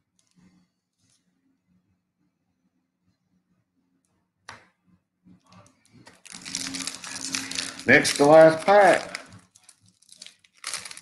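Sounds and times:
plastic wrapper crinkling: 0:05.6 - 0:11.0.

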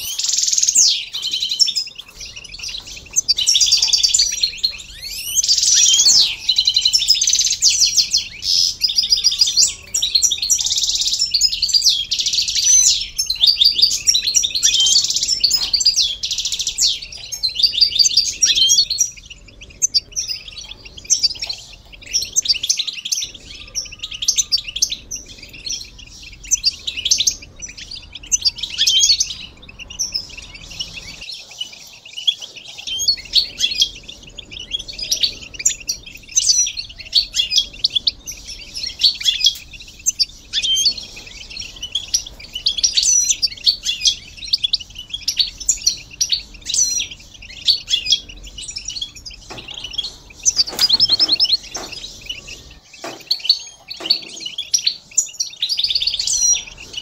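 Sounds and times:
flock of finches chattering and singing: 0:00.0 - 0:57.0.

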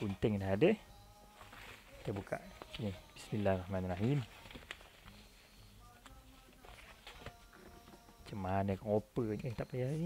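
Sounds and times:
parcel packaging rustling: 0:01.3 - 0:05.3.

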